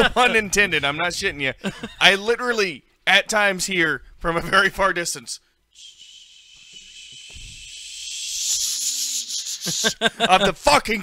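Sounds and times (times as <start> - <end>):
man hissing through teeth: 5.8 - 10.0.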